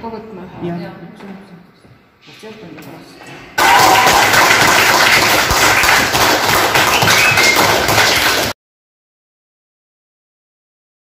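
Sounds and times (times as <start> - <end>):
children applauding: 3.6 - 8.6.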